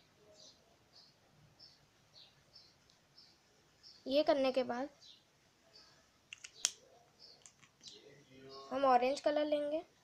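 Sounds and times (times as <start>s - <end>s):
sharp plastic pen clicks: 6.3s - 6.8s, 7.4s - 8.0s.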